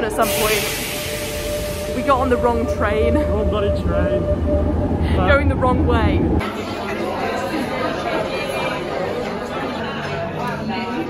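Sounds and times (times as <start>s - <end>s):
restaurant diners chatter: 6.4s - 11.0s.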